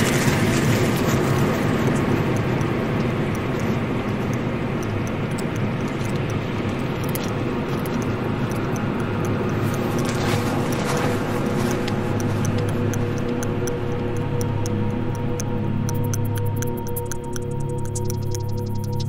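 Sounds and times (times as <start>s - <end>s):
faint ticks: 0.0s - 19.0s
rumbling outdoor noise: 0.0s - 19.0s.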